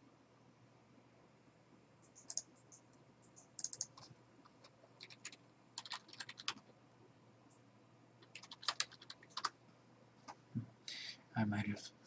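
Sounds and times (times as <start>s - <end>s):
typing on computer keyboard: 2.1s - 2.6s, 3.3s - 6.7s, 8.2s - 9.5s.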